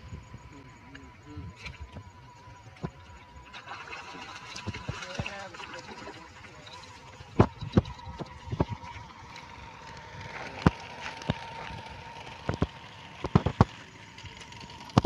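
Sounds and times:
faint steady tone: 0.0 - 15.0.

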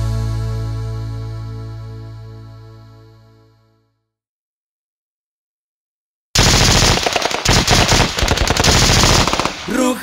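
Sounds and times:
rapid machine-gun fire: 6.4 - 9.9.

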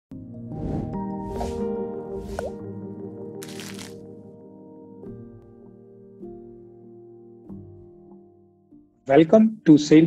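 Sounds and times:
swish: 0.5 - 2.6.

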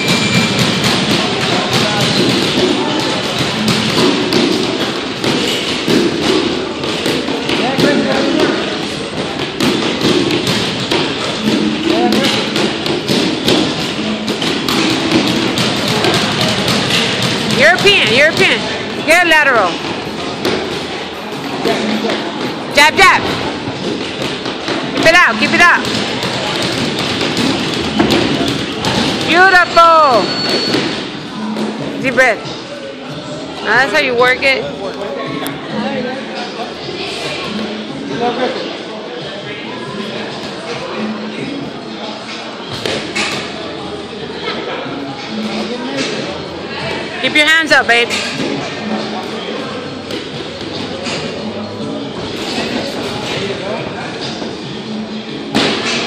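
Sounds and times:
murmur of voices: 0.0 - 56.0.

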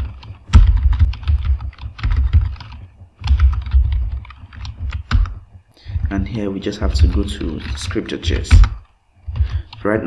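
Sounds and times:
typing on computer keyboard: 0.0 - 9.9.

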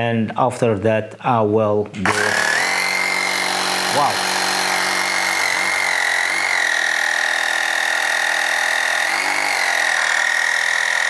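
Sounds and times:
air compressor motor whine: 2.0 - 11.0.

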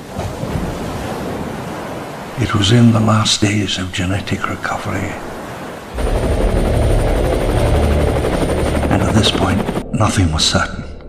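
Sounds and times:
helicopter rotor chopping: 6.0 - 10.0
high-pitched turbine whine: 6.0 - 10.0.

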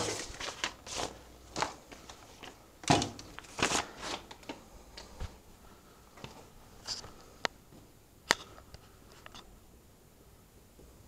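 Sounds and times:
rustling and handling noises: 0.0 - 9.5.

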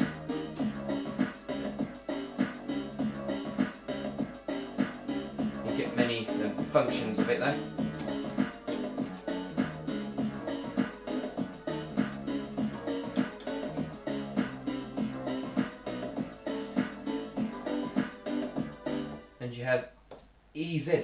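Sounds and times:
keyboard playing chords and notes: 0.0 - 19.4.

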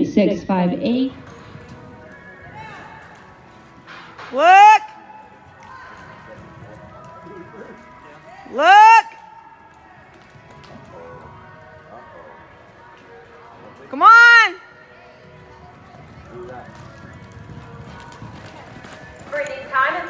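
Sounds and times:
arena noise: 0.0 - 20.0.

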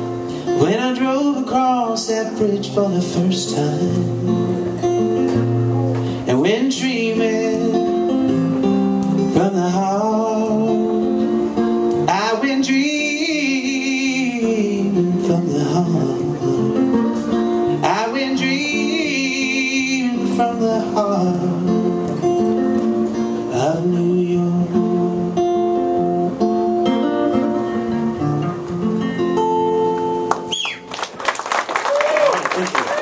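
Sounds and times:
electric guitar solo: 4.2 - 6.3
audience applause and cheering: 30.3 - 33.0.

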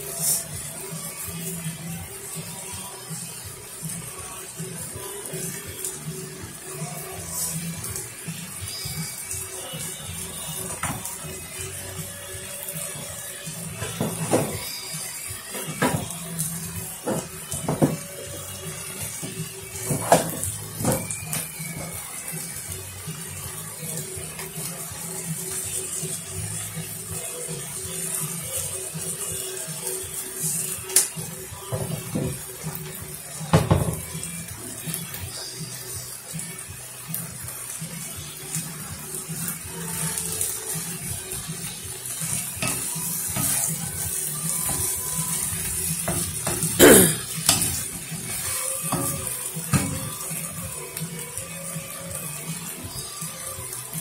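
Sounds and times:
background music: 0.0 - 54.0
meat sizzling in a frying pan: 0.0 - 54.0.

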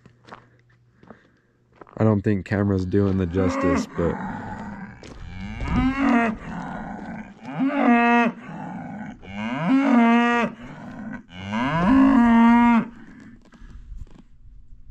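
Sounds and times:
cattle mooing: 3.0 - 13.2.

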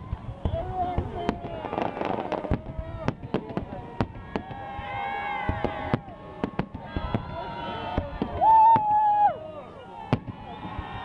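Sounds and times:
fireworks bursting: 0.0 - 9.1, 10.0 - 11.0.

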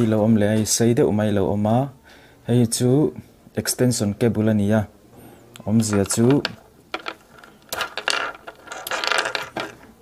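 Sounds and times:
microphone cables rattling on wood: 5.8 - 9.9.

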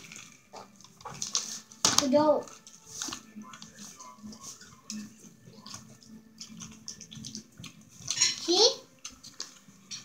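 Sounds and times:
wet chewing: 4.3 - 8.4.

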